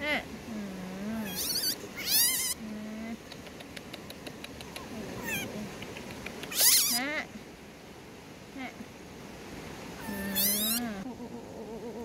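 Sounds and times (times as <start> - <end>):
infant monkey crying: 1.2 - 2.6, 5.2 - 5.5, 6.5 - 7.0, 10.0 - 12.0.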